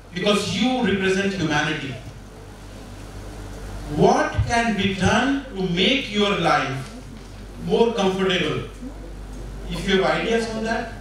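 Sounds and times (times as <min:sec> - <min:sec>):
constant low hum: 0:00.0 - 0:11.0
hall background noise: 0:00.0 - 0:11.0.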